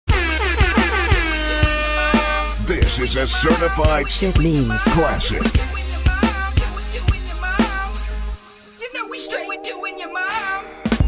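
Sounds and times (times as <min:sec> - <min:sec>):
kick drum beat: 0:03.8 - 0:05.7.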